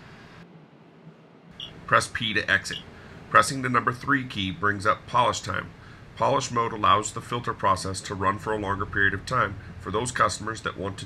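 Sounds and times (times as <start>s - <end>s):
narrator speaking: 1.6s - 11.0s.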